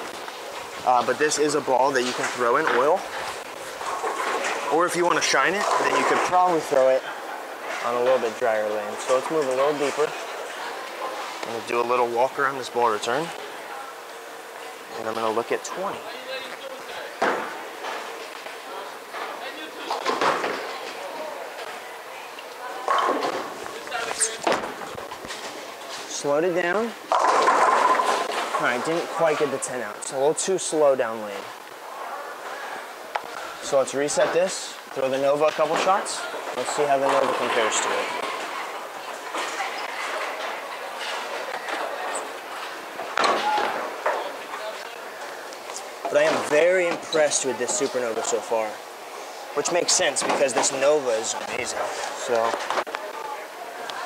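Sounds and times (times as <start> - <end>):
bowling balls rolling: 0.0 - 16.0, 16.6 - 30.8, 31.4 - 48.9.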